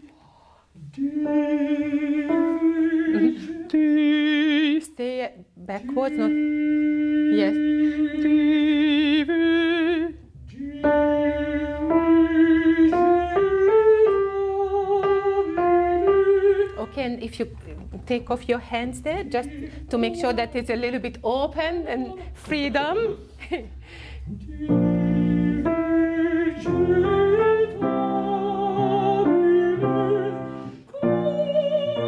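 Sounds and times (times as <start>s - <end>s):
countertenor singing: 0.8s - 5.0s, 5.8s - 17.5s, 18.4s - 22.7s, 24.2s - 32.0s.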